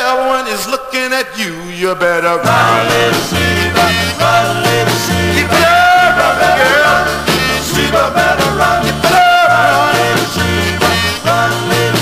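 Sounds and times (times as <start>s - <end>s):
bass line: 2.4s - 12.0s
steady drum beat: 2.4s - 12.0s
bending lead melody line: 2.5s - 12.0s.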